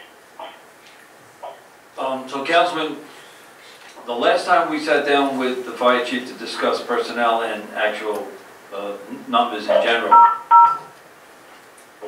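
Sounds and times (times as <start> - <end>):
telephone keypad tones: 10.1 - 10.9.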